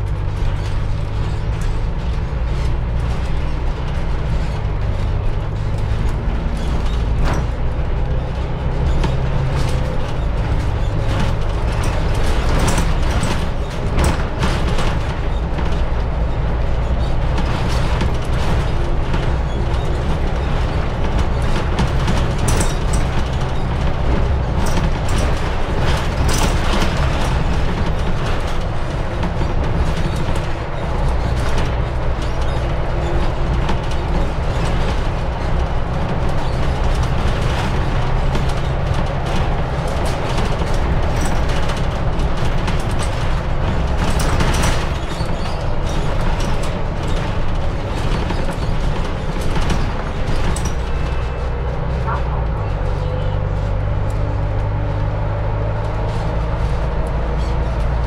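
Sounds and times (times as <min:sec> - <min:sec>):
bus engine drone: 0:00.0 - 0:58.0
rattles and knocks: 0:00.0 - 0:58.0
road noise: 0:00.0 - 0:58.0.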